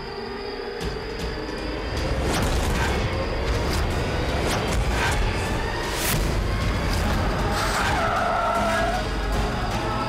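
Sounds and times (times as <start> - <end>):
car tyres screeching: 5.0 - 10.0.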